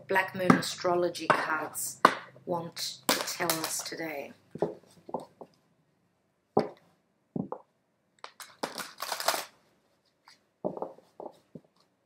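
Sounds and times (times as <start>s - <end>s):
cards being shuffled: 8.2s - 11.4s.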